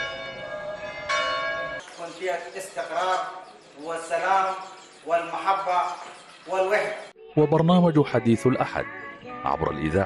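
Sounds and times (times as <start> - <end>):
church bell ringing: 0.0 - 5.4.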